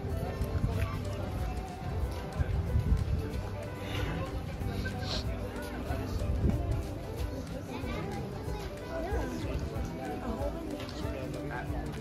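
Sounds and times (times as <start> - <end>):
crowd chatting: 0.0 - 12.0
children's voices: 3.4 - 11.4.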